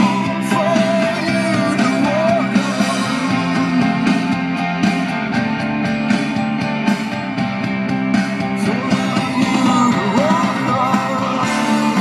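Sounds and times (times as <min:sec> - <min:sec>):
rock guitars: 0:00.0 - 0:12.0
steady drum beat: 0:00.0 - 0:12.0.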